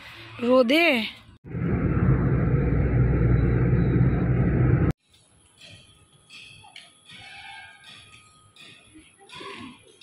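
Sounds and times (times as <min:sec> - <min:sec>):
vehicle engine rumble inside cabin: 0:01.5 - 0:05.0.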